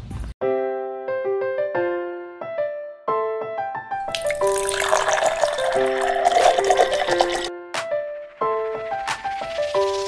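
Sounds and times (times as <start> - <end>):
piano-like background music: 0.4 - 10.0
liquid pouring through a funnel: 4.1 - 7.5.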